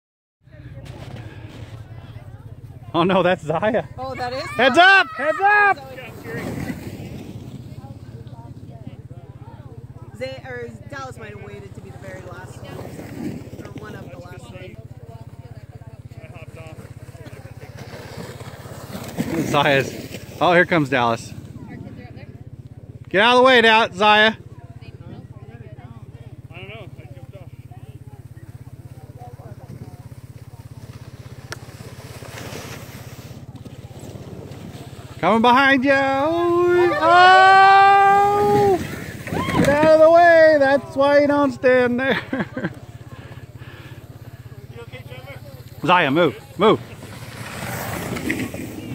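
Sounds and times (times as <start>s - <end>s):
sled scraping over snow: 0.6s - 48.9s
distant children shouting: 4.0s - 6.2s, 36.4s - 40.7s.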